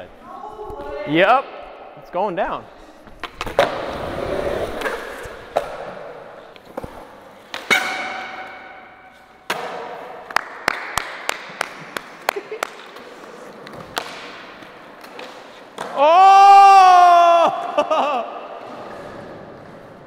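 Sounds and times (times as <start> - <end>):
skateboard wheels rolling on concrete: 2.8 - 7.7, 9.0 - 20.0.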